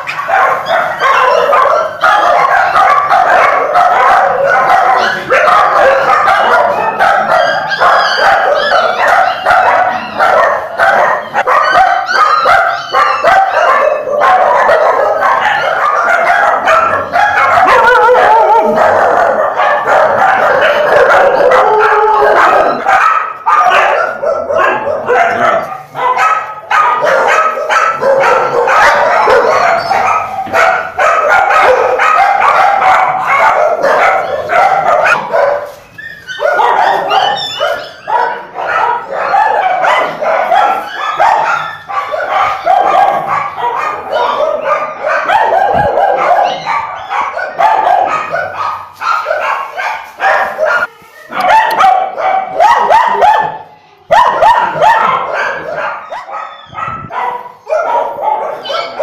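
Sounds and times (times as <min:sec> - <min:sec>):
many dogs barking: 0:00.0 - 0:59.0.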